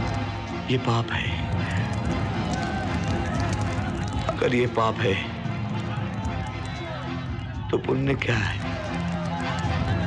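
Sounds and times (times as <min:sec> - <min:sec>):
running footsteps: 0:01.4 - 0:04.6.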